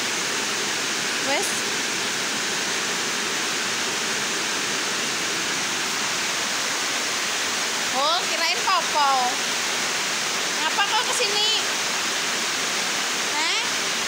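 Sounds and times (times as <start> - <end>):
heavy rain hiss: 0.0 - 14.0.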